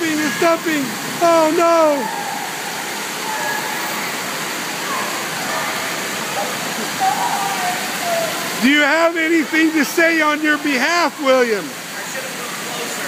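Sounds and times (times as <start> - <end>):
faint voices: 0.0 - 13.0
water rushing and splashing: 0.0 - 13.0.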